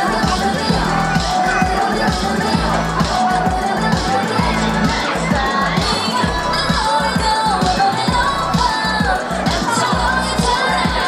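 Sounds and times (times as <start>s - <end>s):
crowd shouting and cheering: 0.0s - 11.0s
pop dance music over loudspeakers: 0.0s - 11.0s.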